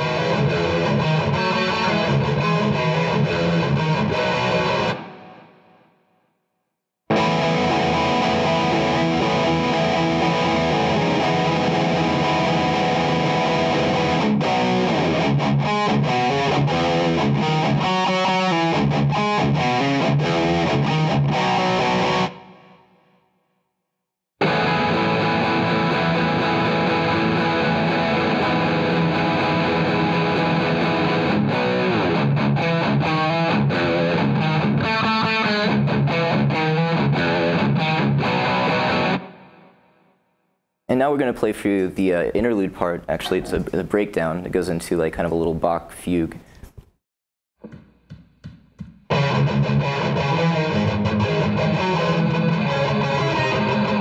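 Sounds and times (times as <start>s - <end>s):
distorted electric guitar riff: 0.0s - 5.8s, 7.1s - 23.0s, 24.4s - 39.8s, 49.1s - 54.0s.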